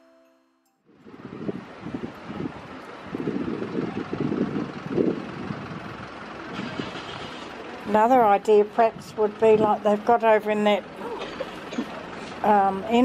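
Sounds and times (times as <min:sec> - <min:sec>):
wind buffeting microphone: 0:00.9 - 0:11.0
traffic rumble: 0:00.9 - 0:13.0.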